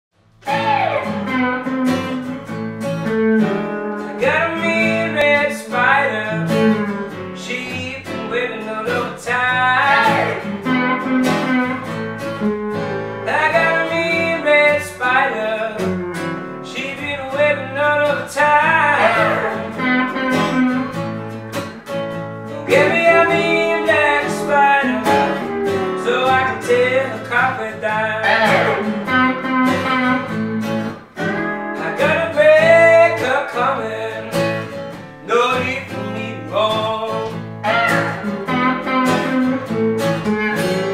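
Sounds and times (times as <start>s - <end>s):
acoustic guitar strumming: 0.2s - 40.9s
electric guitar blues lead: 0.4s - 40.9s.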